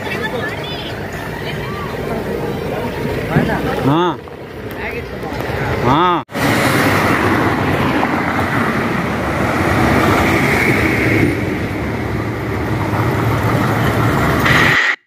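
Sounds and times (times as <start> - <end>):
highway traffic rushing: 0.0 - 15.0.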